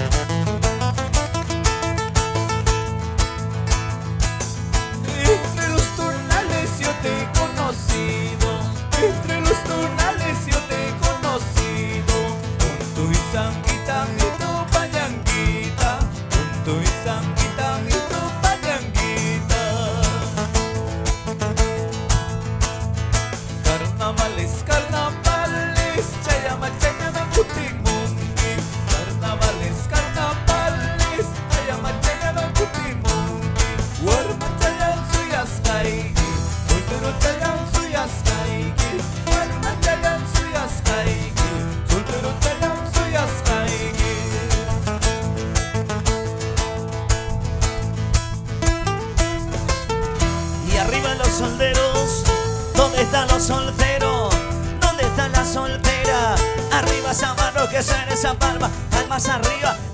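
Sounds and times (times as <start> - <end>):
acoustic guitars strummed: 0.0 - 59.9
man singing: 4.9 - 20.9, 23.5 - 45.1, 50.6 - 59.9.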